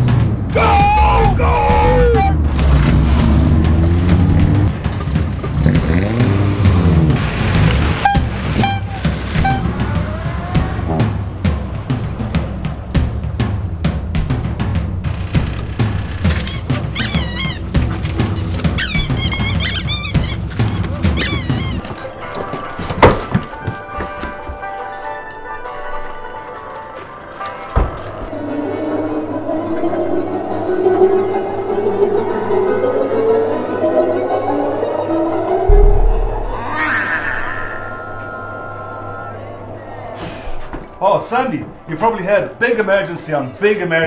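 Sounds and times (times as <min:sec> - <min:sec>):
background music with low pulse: 0:00.0 - 0:36.7
sharp loud hit: 0:35.7 - 0:37.2.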